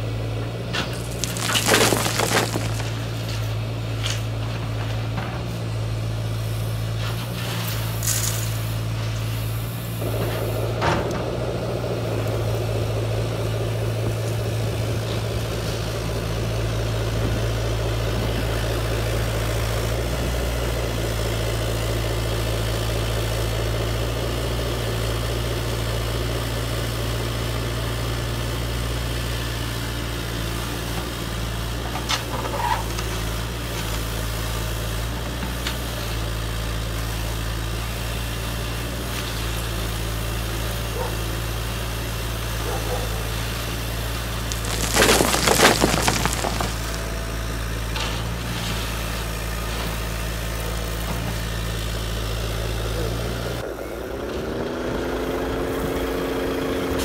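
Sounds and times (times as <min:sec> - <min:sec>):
stones clattering into truck bed: 0:00.7 - 0:04.3, 0:44.5 - 0:47.3.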